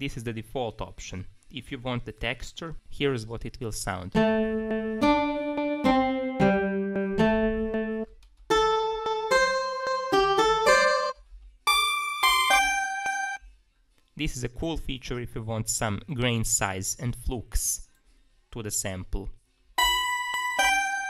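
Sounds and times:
sampled acoustic guitar melody: 0:04.2 - 0:13.4, 0:19.8 - 0:21.0.

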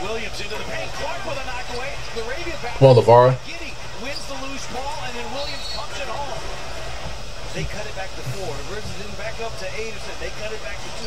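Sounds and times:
arena crowd noise: 0:00.0 - 0:11.0
commentator talking: 0:02.5 - 0:03.4.

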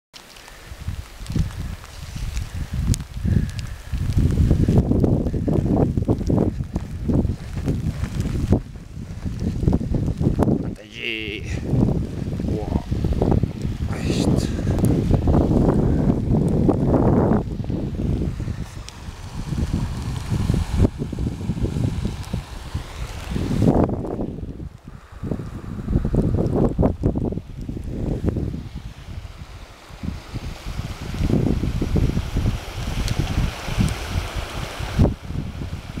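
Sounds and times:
gusty wind on microphone: 0:00.3 - 0:36.0.

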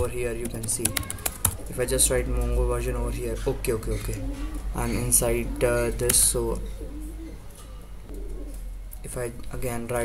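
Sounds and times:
faint low cooing bird: 0:00.8 - 0:09.1.

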